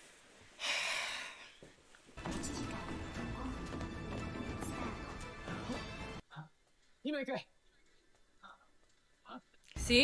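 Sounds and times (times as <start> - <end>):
background music: 2.2 - 6.2.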